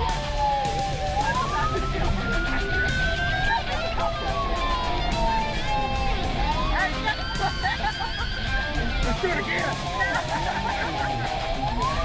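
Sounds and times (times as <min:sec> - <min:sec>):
car engine and road noise: 0:00.0 - 0:12.0
police siren wailing: 0:00.0 - 0:12.0.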